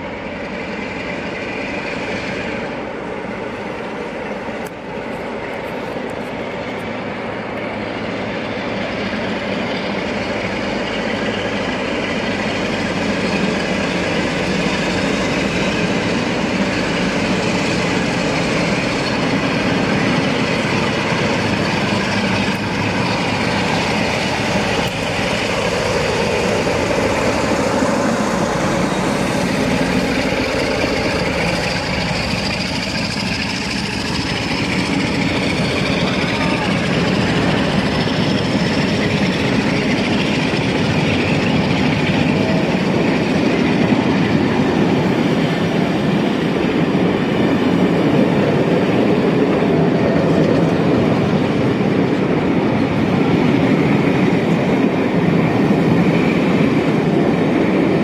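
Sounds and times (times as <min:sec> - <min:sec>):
diesel locomotives working under power: 0:00.0 - 0:58.0.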